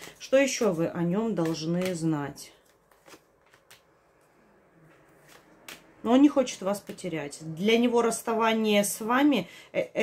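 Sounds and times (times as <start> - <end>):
cards tapping and sliding on cloth: 0.0 - 2.1.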